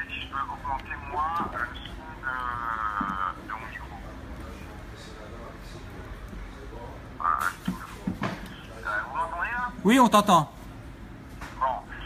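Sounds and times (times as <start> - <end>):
man's voice through phone speaker: 0.0 - 4.1, 7.2 - 10.6
low room murmur: 0.0 - 12.0
man answering: 9.8 - 10.6.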